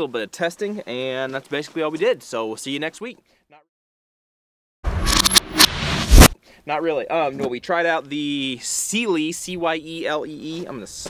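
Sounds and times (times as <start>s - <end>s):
loud noise burst with sharp cracks: 4.9s - 6.4s.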